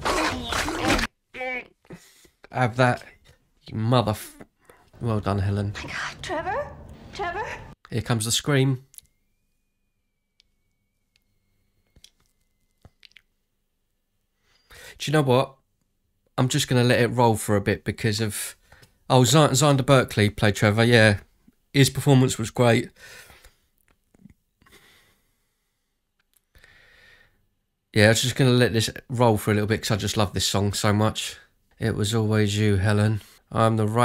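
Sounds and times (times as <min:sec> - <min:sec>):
person breathing softly: 0:04.6 - 0:05.0, 0:14.4 - 0:15.0, 0:22.9 - 0:23.7, 0:24.6 - 0:27.4.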